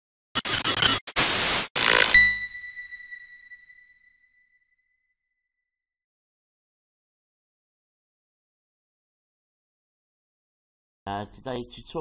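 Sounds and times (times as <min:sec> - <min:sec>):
tv static hiss: 0:00.8 - 0:02.1.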